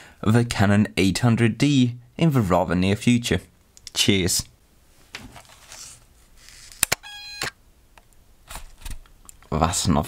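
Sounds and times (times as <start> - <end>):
camera clicks: 6.4 - 7.6.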